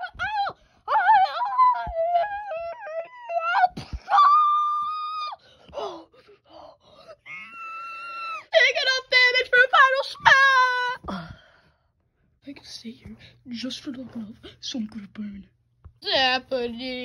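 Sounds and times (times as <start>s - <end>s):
person wailing and moaning: 0.0s - 8.5s.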